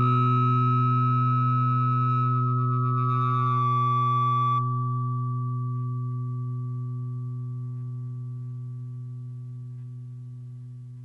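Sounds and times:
electric guitar note ringing: 0.0s - 11.0s.

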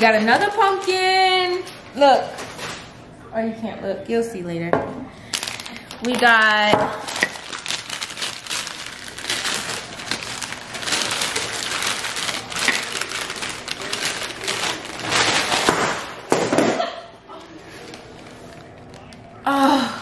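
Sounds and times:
paper wrapping crinkling: 0.0s - 3.0s, 5.3s - 16.2s, 17.6s - 19.3s.

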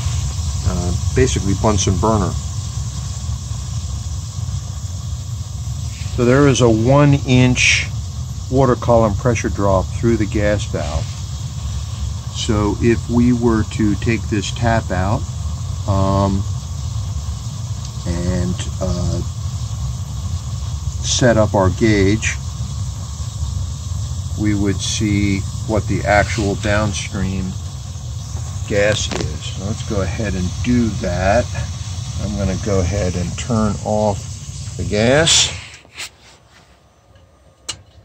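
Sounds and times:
faint gas hiss: 0.0s - 38.0s
gas burner flame rumble: 0.0s - 38.0s.

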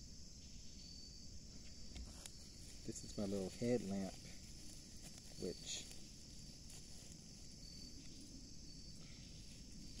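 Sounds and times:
insect chorus trilling: 0.0s - 10.0s.

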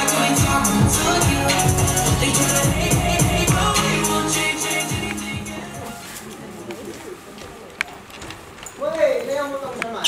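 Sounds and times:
faint indistinct voices: 5.2s - 10.0s.

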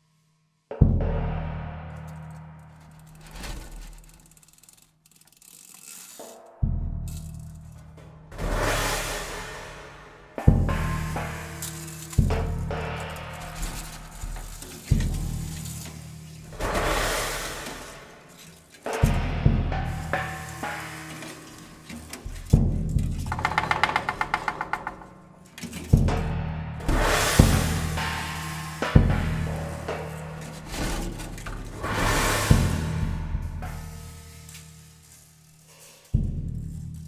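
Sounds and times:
cymbal washes: 6.2s - 23.3s, 25.9s - 37.0s
rapid drum rattle: 10.4s - 34.0s
low tom strikes with mallets: 19.0s - 21.1s, 25.9s - 30.7s.

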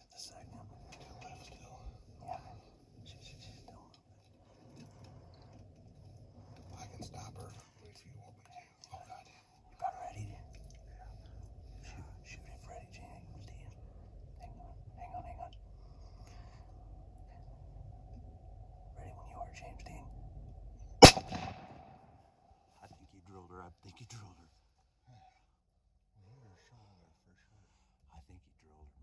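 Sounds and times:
people whispering: 0.0s - 17.9s, 19.0s - 20.1s, 26.2s - 29.0s
low rumble: 9.6s - 22.2s
sharp knock: 21.0s - 21.8s.

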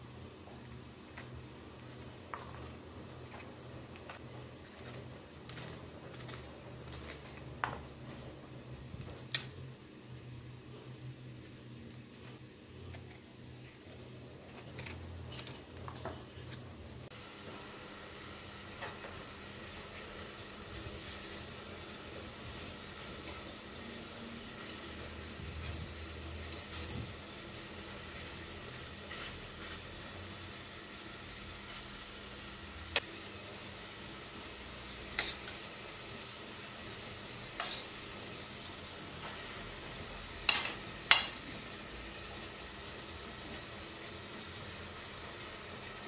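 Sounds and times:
chicken sizzling in sauce: 16.9s - 46.0s.

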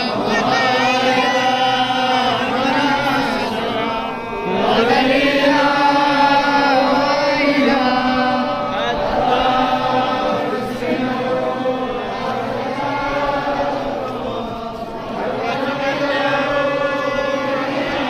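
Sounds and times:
person chanting a melodic recitation: 0.0s - 18.0s.

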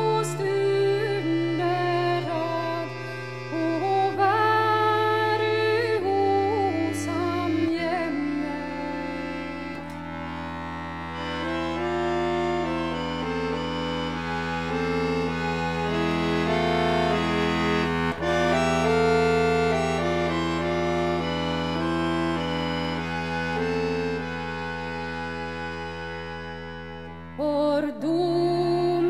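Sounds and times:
accordion playing slow folk tune: 0.0s - 29.0s.

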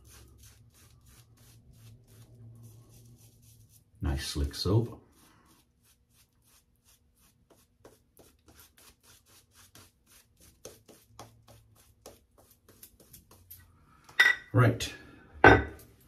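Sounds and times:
shaving brush swishing: 0.0s - 13.5s.

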